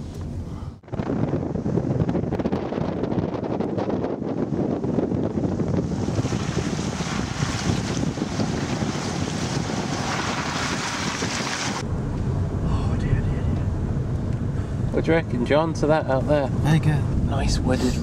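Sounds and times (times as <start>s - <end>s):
wind on microphone: 0.0s - 14.9s.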